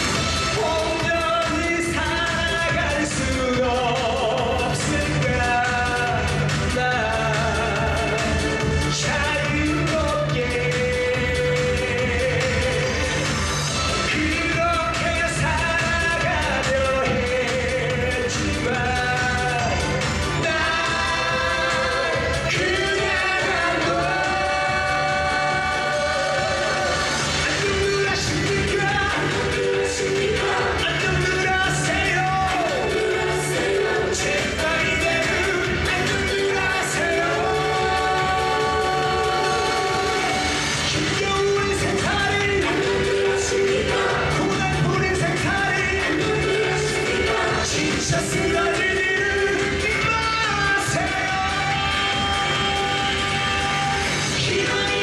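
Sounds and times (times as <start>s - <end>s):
backing band beat: 0.0s - 55.0s
man singing into a microphone: 0.0s - 55.0s.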